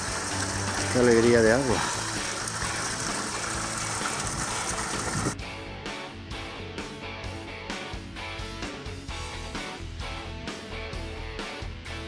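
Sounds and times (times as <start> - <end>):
water running through trough: 0.0 - 5.4.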